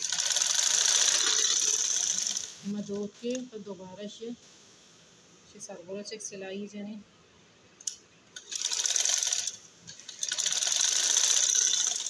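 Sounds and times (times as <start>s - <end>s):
sewing machine stitching: 0.0s - 2.6s, 8.4s - 12.0s.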